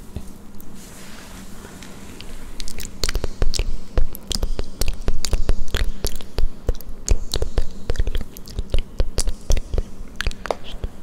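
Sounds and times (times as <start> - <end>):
wet mouth clicks and smacks: 2.6 - 11.0.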